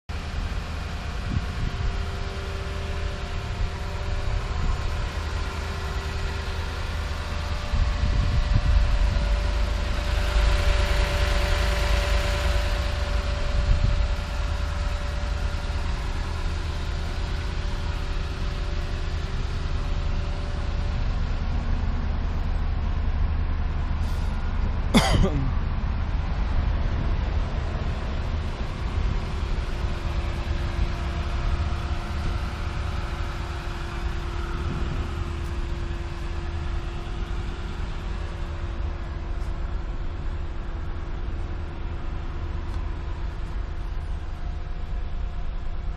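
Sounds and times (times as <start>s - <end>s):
wind rumble on microphone: 0.1s - 24.9s, 25.6s - 45.9s
car engine idling: 0.1s - 45.9s.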